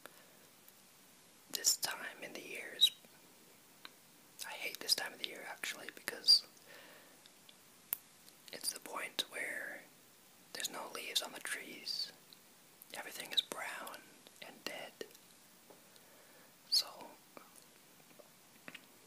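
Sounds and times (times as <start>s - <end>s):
person whispering: 1.5s - 2.9s, 4.4s - 6.5s, 8.5s - 9.9s, 10.5s - 12.2s, 12.9s - 15.1s, 16.7s - 17.6s.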